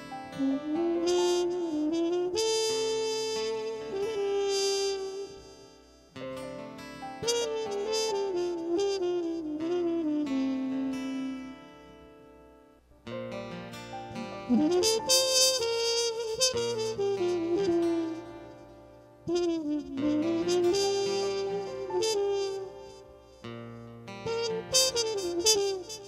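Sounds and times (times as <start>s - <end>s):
solo saxophone melody: 0.0s - 6.3s, 7.0s - 12.1s, 14.1s - 26.0s.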